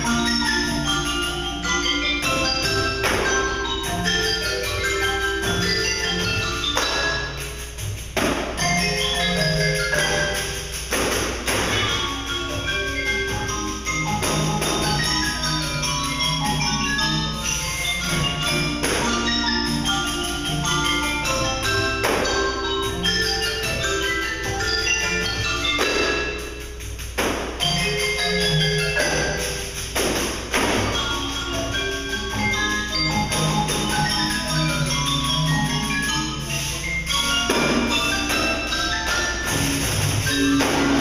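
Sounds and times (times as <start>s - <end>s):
ringing mallet keyboard notes: 0.0s - 41.0s
pandeiros struck sharply: 8.1s - 9.0s, 10.8s - 12.4s, 27.1s - 27.9s, 29.0s - 31.2s, 37.4s - 41.0s.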